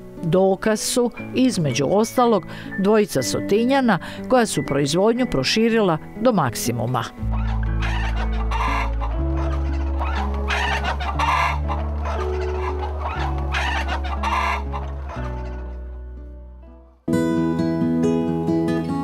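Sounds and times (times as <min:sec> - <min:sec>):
music with long low notes: 0:06.0 - 0:19.0
hens clucking: 0:07.2 - 0:15.9.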